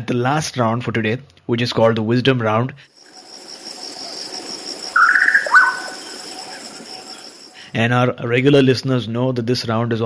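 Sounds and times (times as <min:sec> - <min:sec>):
high insect trilling: 0:03.0 - 0:07.7
short chirping call: 0:03.7 - 0:07.6.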